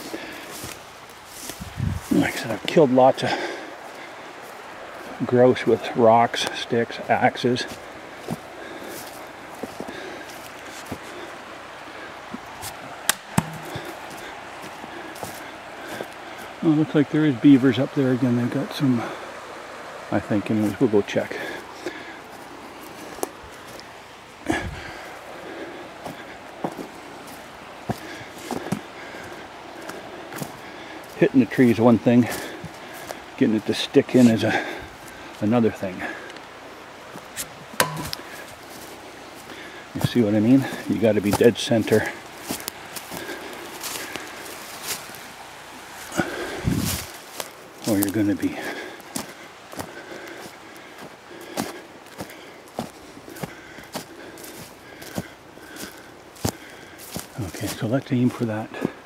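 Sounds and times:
footsteps on forest trail: 0:00.0 - 0:59.0
steady hiss: 0:00.0 - 0:59.0
sharp snaps: 0:13.0 - 0:13.7
axe striking tree trunk: 0:13.1 - 0:13.9, 0:37.8 - 0:38.3
light ticks: 0:36.3 - 0:36.5
short ring: 0:37.8 - 0:38.1.

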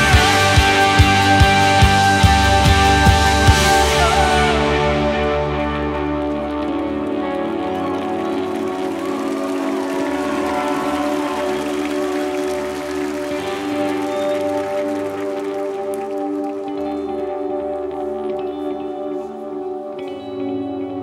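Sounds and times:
deep bass: 0:00.0 - 0:08.5
ambient music held chords: 0:00.0 - 0:21.0.

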